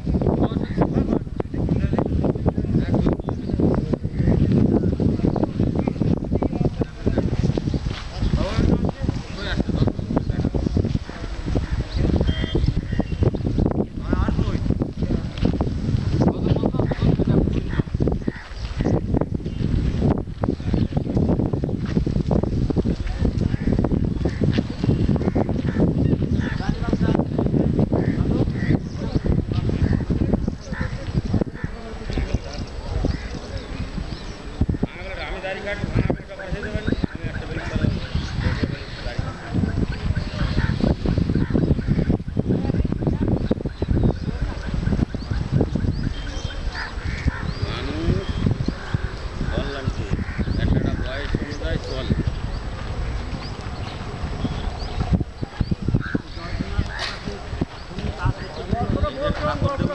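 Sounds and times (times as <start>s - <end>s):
wind buffeting microphone: 0.0s - 59.9s
high bird calls: 2.7s - 14.8s, 16.0s - 21.4s, 22.4s - 59.9s.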